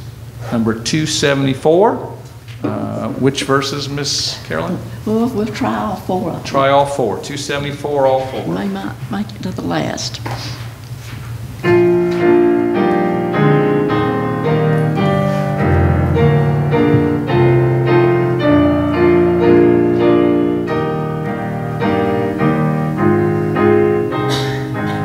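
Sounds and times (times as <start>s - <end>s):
piano playing hymn chords: 0.0s - 9.2s, 11.4s - 25.0s.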